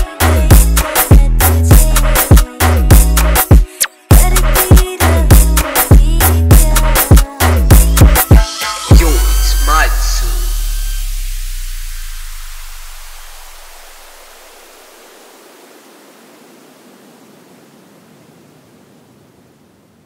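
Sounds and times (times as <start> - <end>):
deep bass note: 8.9 - 14.2
synthesized white noise: 8.9 - 20.0.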